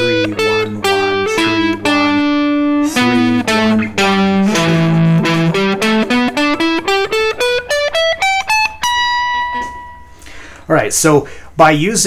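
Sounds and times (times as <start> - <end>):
electric guitar scale run: 0.0 - 10.0.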